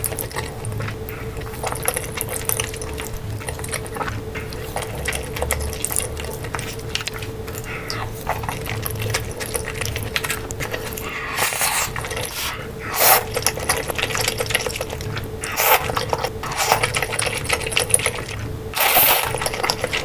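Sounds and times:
chewing and wet mouth sounds: 0.0s - 20.0s
faint steady hum: 0.0s - 20.0s
noodles slurped: 0.0s - 20.0s.

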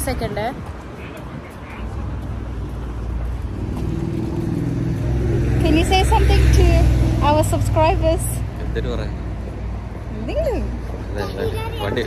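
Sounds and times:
low traffic rumble: 0.0s - 12.0s
vehicle engine hum: 0.0s - 12.0s.

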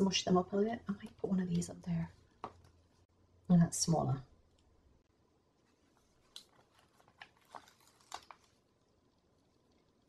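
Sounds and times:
paper sticker peeling crackles: 6.2s - 8.7s.

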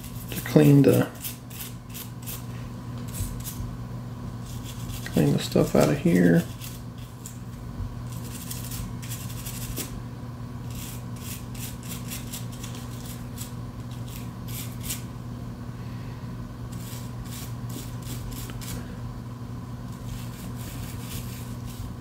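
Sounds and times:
toothbrush scrubbing plastic: 0.0s - 2.5s, 4.4s - 7.4s, 8.1s - 9.9s, 10.7s - 15.0s, 19.9s - 22.0s
steady low hum: 0.0s - 22.0s.

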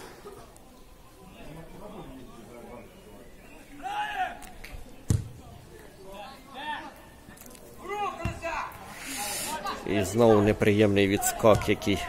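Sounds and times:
football being kicked: 5.1s - 5.4s, 8.2s - 8.4s.

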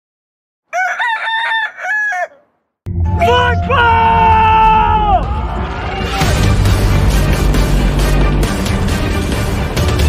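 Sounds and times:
rooster crowing: 0.7s - 2.6s.

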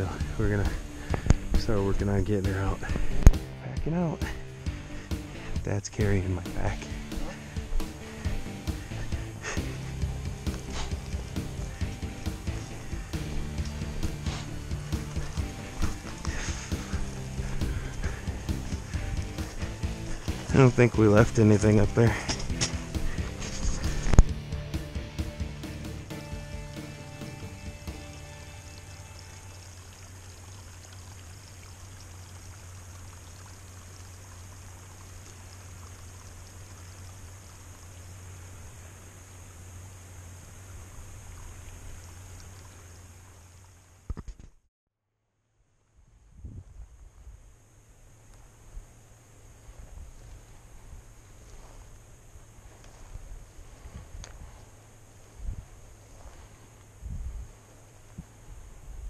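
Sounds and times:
stream trickling over rocks: 0.0s - 24.4s, 26.3s - 44.3s, 47.6s - 59.0s.

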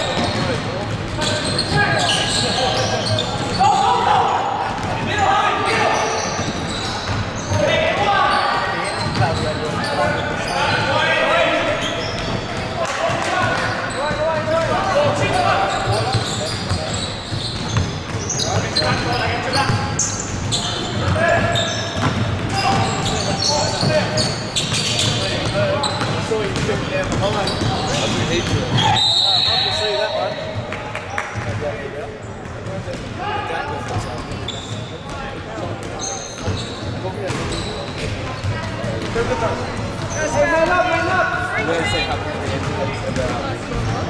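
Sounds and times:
sneakers squeaking: 0.0s - 44.0s
basketball bouncing: 22.0s - 23.0s
referee's whistle: 28.8s - 30.6s.

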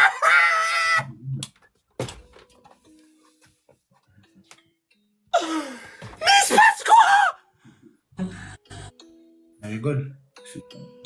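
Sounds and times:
person shouting: 6.2s - 7.4s.

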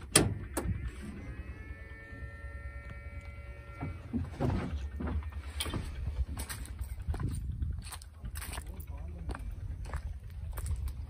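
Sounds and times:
electric motor whining: 0.0s - 7.0s
low hum: 0.0s - 11.0s.

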